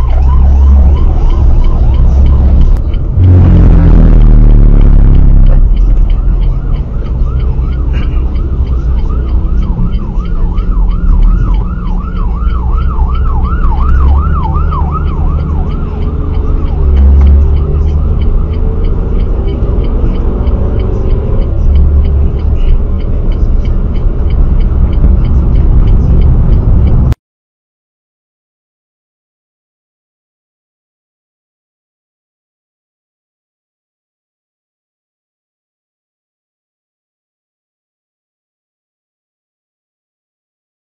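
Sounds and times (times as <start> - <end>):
siren yelping: 0.0 - 22.8
road and engine rumble inside car: 0.0 - 27.2.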